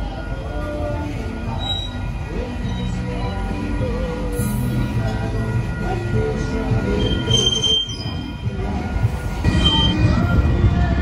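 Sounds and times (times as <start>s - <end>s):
train rumble: 0.0s - 11.0s
steel wheels squealing: 1.5s - 3.0s, 6.9s - 8.5s, 9.5s - 10.1s.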